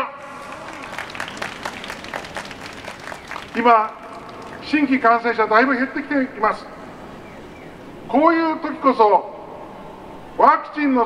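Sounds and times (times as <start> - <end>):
crowd applauding: 0.0 - 5.2.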